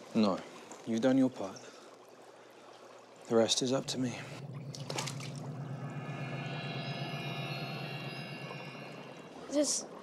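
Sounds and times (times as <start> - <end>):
faint water sounds: 0.0 - 10.0
sustained high music tones: 3.6 - 10.0.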